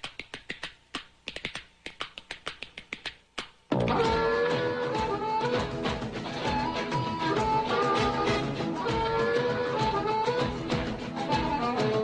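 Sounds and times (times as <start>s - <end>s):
quick sharp taps: 0.0s - 3.6s.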